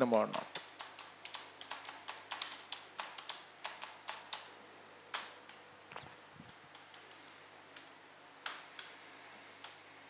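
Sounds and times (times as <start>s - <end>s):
computer keyboard typing: 0.2s - 4.5s, 5.1s - 7.2s.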